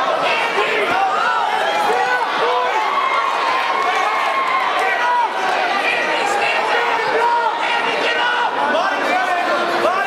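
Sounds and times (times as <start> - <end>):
crowd shouting and yelling: 0.0 - 10.0.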